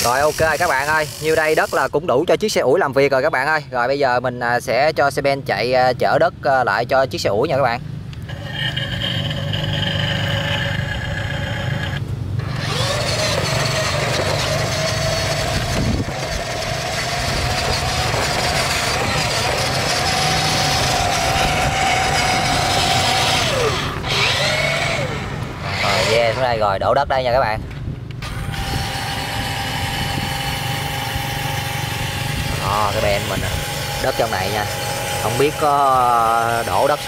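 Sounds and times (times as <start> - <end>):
toy truck motor whine: 0.0 - 1.9, 8.2 - 26.6, 28.2 - 37.0.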